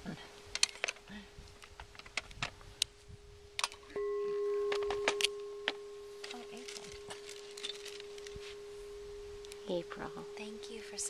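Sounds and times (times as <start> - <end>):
crystal singing bowl ringing: 3.1 - 11.0
mallet striking bowl: 3.9 - 7.2.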